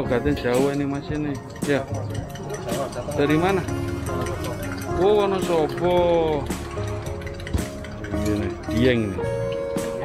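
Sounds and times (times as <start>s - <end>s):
background music: 0.0s - 10.0s
spoon clinking against glass: 0.0s - 10.0s
spoon stirring in a glass: 0.0s - 10.0s.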